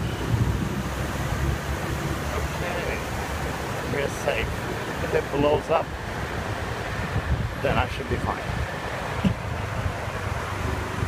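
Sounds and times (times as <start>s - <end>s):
street traffic rumble: 0.0s - 11.0s
wind buffeting microphone: 0.0s - 11.0s.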